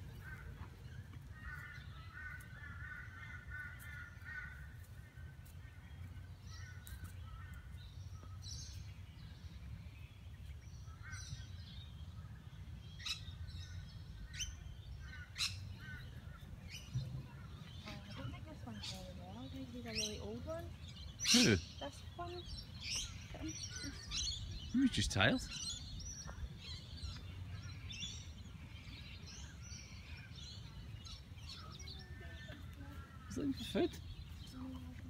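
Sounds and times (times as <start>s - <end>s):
birds warbling and chirping: 0.0s - 35.0s
short sharp bird calls: 21.2s - 26.5s.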